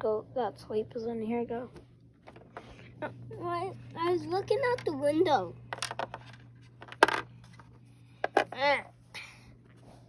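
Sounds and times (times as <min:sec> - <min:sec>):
plastic toy pieces knocking: 0:05.7 - 0:07.3, 0:08.2 - 0:08.6.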